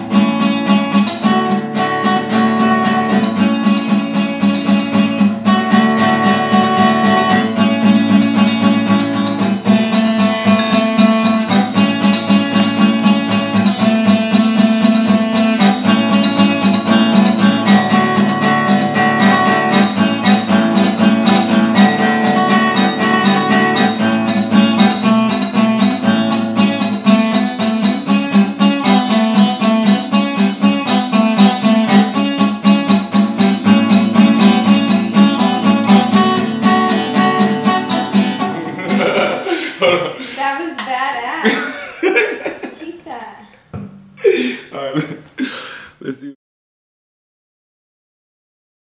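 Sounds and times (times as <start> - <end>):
acoustic guitar strumming: 0.0 - 45.8.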